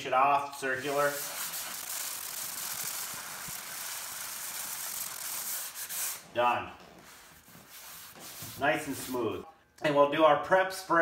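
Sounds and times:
sandpaper rubbing on leather: 0.6 - 6.2, 7.0 - 9.4.

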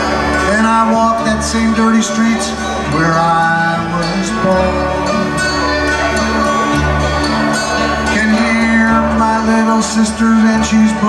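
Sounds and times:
man singing: 0.0 - 6.8, 7.4 - 11.0
acoustic guitars strumming: 0.0 - 11.0
mandolin: 0.0 - 11.0
upright bass: 0.0 - 11.0.

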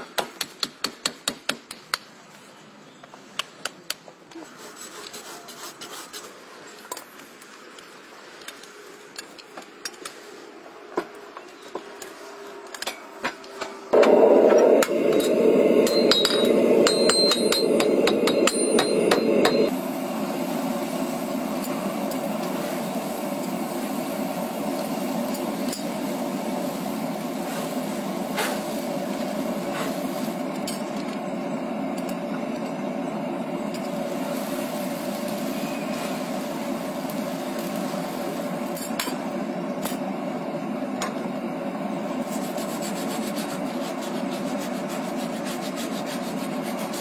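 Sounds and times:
gas forge rushing: 13.5 - 47.0.

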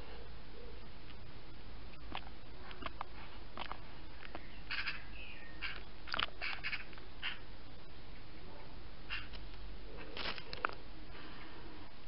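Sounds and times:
birds calling harshly: 3.8 - 11.6.

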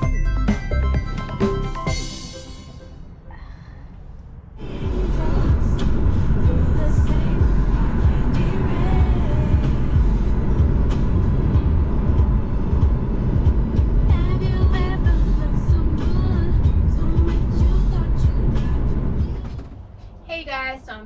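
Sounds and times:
music playing: 0.0 - 3.6, 4.6 - 19.8
car road and engine rumble: 0.0 - 21.0.

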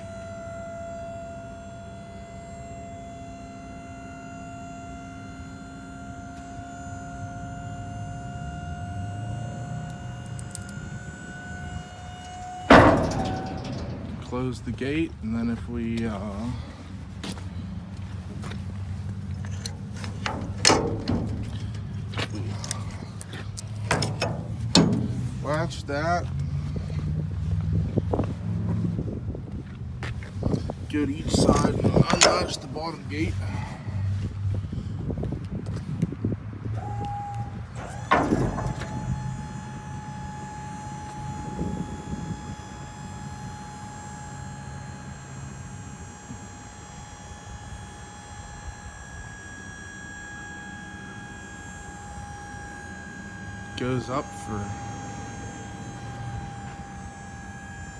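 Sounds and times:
low engine hum: 0.0 - 57.9
thin whine: 0.0 - 57.9
metal tailgate clanking: 9.4 - 15.7, 19.5 - 26.2, 31.3 - 33.7, 36.8 - 42.2
latch clicks: 9.8 - 14.7, 19.4 - 25.6, 36.8 - 40.2.

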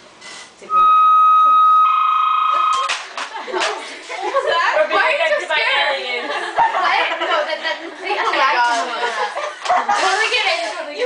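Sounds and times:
telephone handset beep: 0.9 - 2.9.

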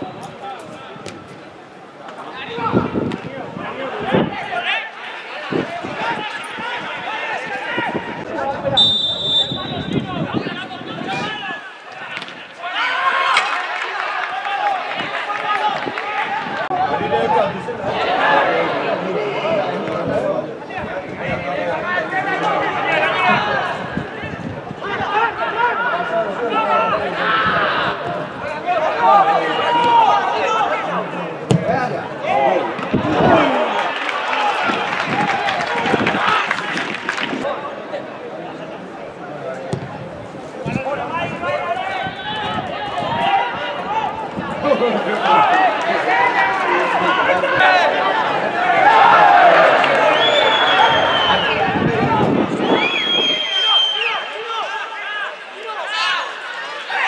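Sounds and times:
voices shouting and talking: 0.0 - 57.0
people shouting: 41.5 - 52.3.

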